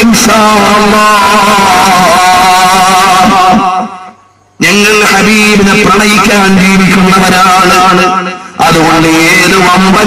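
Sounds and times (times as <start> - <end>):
man's voice holding a wavering tone: 0.0 - 10.0.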